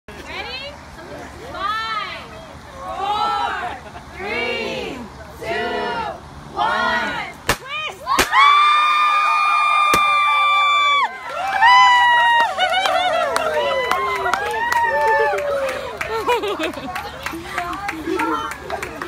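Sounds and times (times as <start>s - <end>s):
excited shrieks and cheering: 8.0s - 17.1s.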